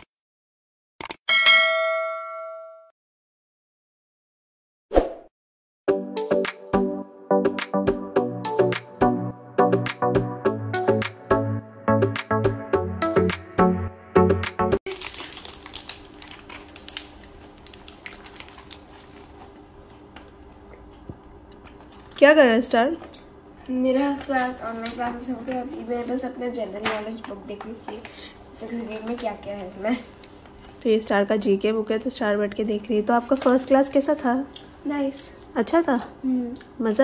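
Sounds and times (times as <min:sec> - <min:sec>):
notification bell ding: 0:01.3 - 0:02.9
aluminium foil crinkling: 0:14.9 - 0:20.0.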